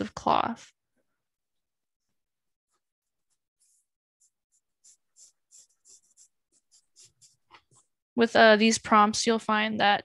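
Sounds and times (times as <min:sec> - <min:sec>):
pencil strokes on paper: 0:02.0 - 0:08.0.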